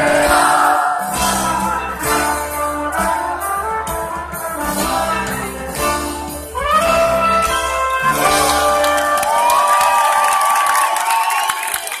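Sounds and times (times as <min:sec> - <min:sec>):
band held chord with brass: 0:00.0 - 0:09.5
crowd cheering and clapping: 0:08.0 - 0:12.0.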